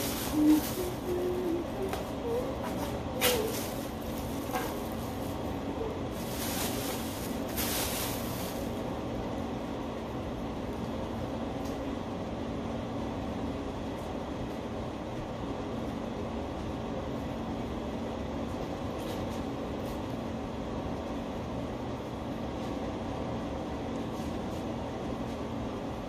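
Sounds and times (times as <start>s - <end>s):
machine hum: 0.0s - 26.0s.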